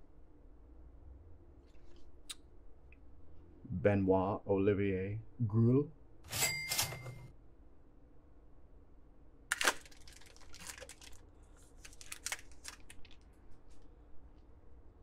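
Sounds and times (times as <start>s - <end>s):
foil pack tearing open: 9.5s - 13.3s
cards rustling: 9.5s - 13.8s
wrapper crinkling and rustling: 9.5s - 13.9s.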